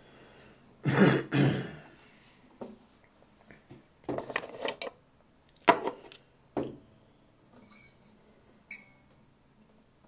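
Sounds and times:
man clearing his throat: 0:00.8 - 0:01.9.

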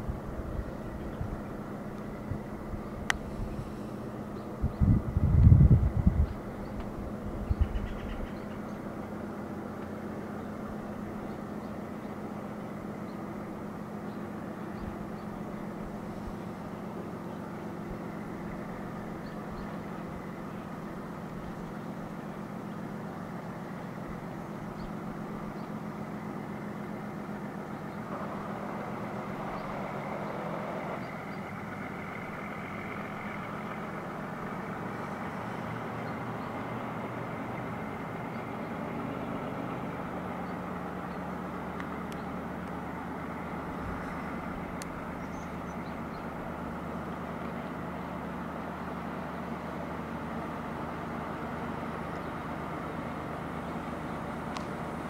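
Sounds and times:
diesel locomotive engine droning: 0:00.0 - 0:55.0.

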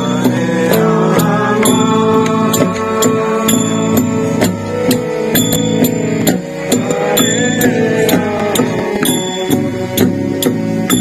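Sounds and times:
chanted singing: 0:00.0 - 0:11.0
small hand cymbals striking: 0:00.0 - 0:11.0
sustained instrument tones: 0:00.0 - 0:11.0.

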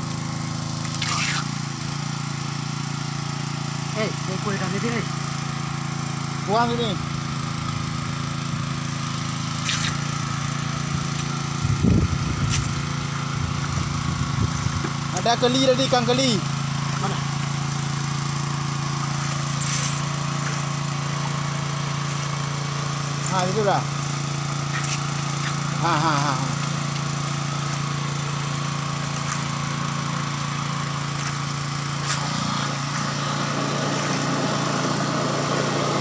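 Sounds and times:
small engine running: 0:00.0 - 0:36.0.

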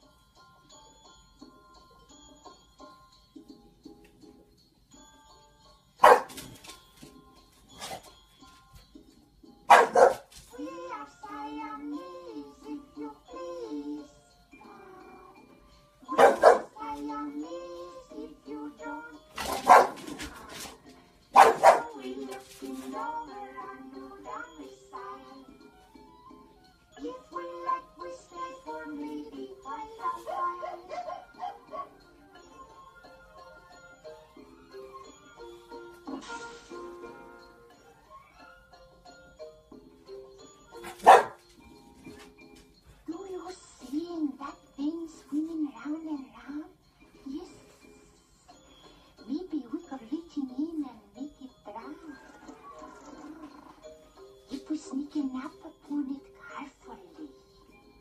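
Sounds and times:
dog barking: 0:06.0 - 0:06.5, 0:09.7 - 0:10.3, 0:16.1 - 0:16.8, 0:19.4 - 0:20.1, 0:21.3 - 0:22.0, 0:30.2 - 0:32.0, 0:40.8 - 0:41.4
cartoon music and singing: 0:10.4 - 0:38.8, 0:43.0 - 0:48.2, 0:49.2 - 0:58.0.

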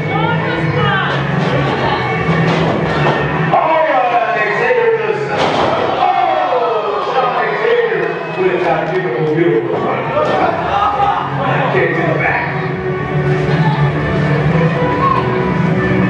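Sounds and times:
crowd shouting: 0:01.6 - 0:11.8, 0:13.4 - 0:15.7.

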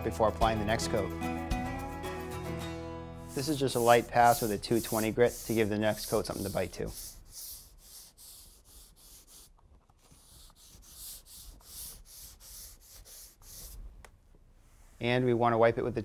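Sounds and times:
sanding block strokes on floor: 0:03.3 - 0:09.5, 0:10.1 - 0:13.8.

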